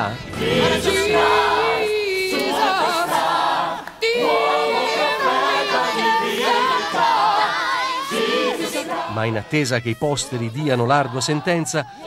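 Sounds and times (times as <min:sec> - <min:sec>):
chorus singing: 0:00.0 - 0:12.0.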